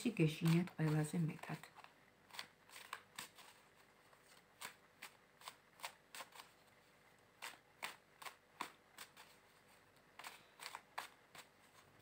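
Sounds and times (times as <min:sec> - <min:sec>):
cards being shuffled: 0:00.0 - 0:06.7, 0:07.4 - 0:12.0.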